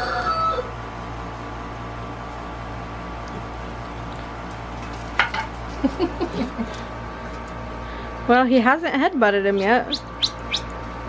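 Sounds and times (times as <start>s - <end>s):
steady low hum: 0.6s - 11.0s.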